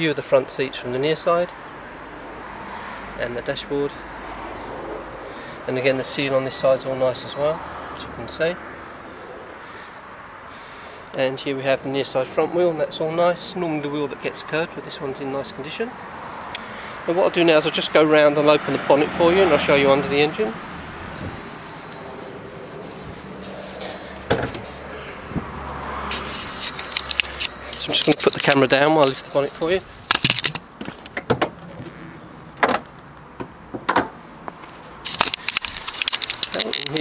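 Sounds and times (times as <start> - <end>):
outdoor ambience hiss and rumble: 0.0 - 37.0.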